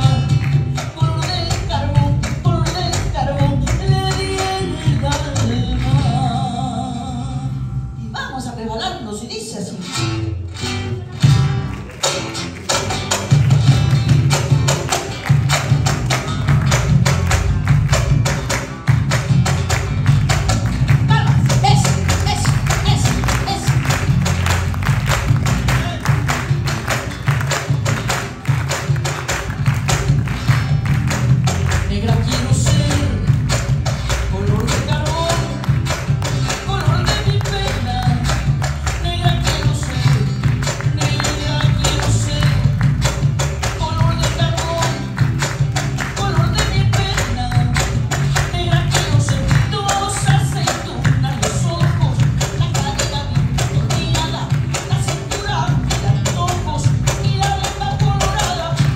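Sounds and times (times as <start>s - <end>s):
driving percussion beat: 0.0s - 6.7s, 10.7s - 58.9s
woman singing: 0.0s - 7.5s, 46.0s - 58.9s
acoustic guitars: 0.0s - 58.9s
electric bass: 0.0s - 58.9s.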